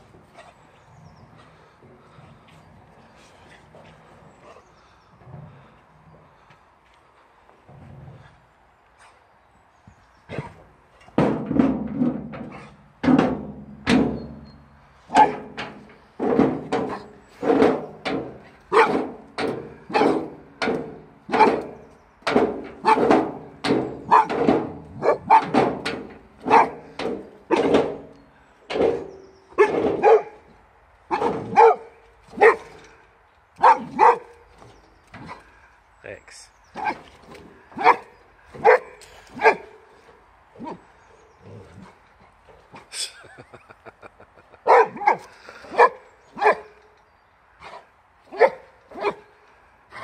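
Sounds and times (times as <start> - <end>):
dog barking: 18.7 - 19.0, 19.9 - 20.2, 22.8 - 23.1, 24.1 - 24.4, 25.0 - 25.5, 26.4 - 26.8, 29.6 - 30.4, 31.1 - 32.7, 33.6 - 34.3, 37.8 - 39.7, 44.7 - 46.7, 48.3 - 49.3.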